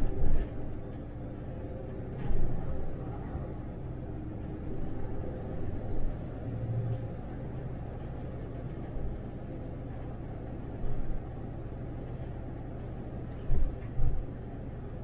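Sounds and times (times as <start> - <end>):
bus cabin rumble: 0.0 - 15.0.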